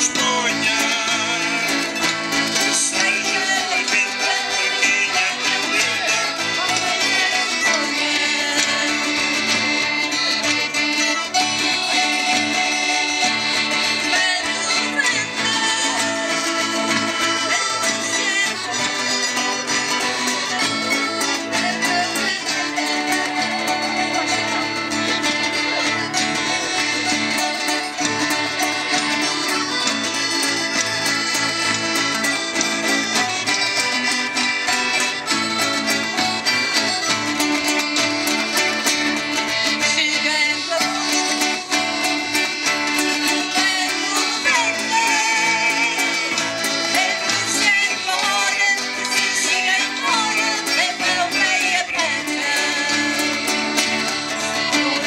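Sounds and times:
people singing: 0:00.0 - 0:24.1, 0:39.2 - 0:55.0
accordion: 0:00.0 - 0:55.0
acoustic guitars: 0:00.0 - 0:55.0.

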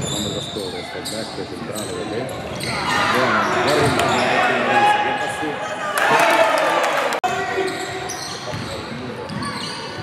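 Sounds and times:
players' voices: 0:00.0 - 0:10.0
basketball bouncing on wooden court: 0:08.5 - 0:09.6.

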